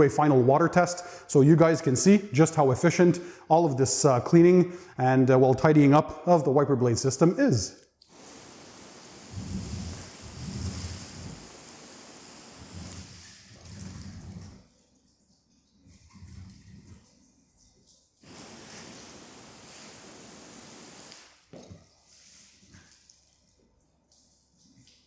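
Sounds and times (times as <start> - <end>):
water spraying onto windshield: 8.1 - 14.0, 18.2 - 21.4.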